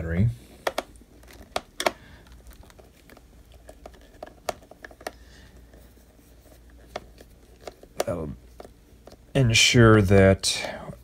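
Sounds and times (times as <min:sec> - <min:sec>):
low steady hum: 0:00.0 - 0:11.0
handling clicks and taps: 0:00.6 - 0:02.0.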